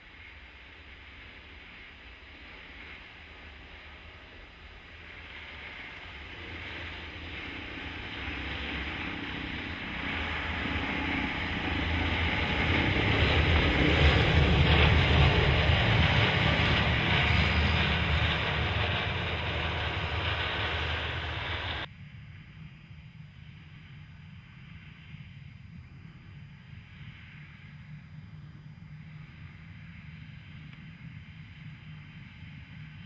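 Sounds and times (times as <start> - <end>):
low hum: 1.5 - 33.0
tracks churning snow: 2.3 - 21.9
snow vehicle engine: 5.0 - 21.9.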